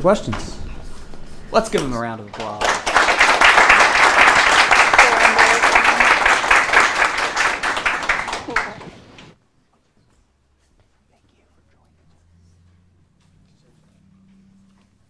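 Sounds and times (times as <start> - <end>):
audience applauding: 1.8 - 9.4.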